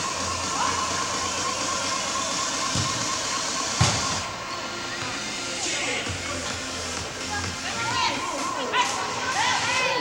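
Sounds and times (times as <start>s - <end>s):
indoor soccer game ambience: 0.0s - 10.0s.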